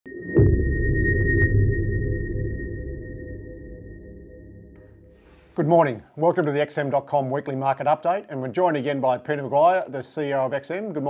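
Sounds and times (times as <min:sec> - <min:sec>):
deep synth hit: 0:00.2 - 0:05.3.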